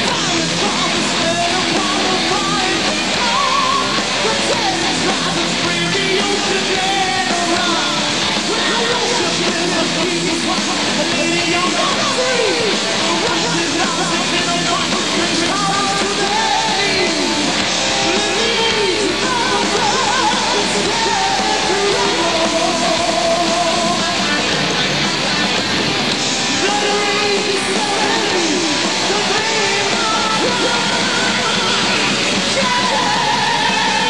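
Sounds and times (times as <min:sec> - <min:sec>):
heavy metal band playing live: 0:00.0 - 0:34.0
pitch-bending guitar melody: 0:00.0 - 0:34.0.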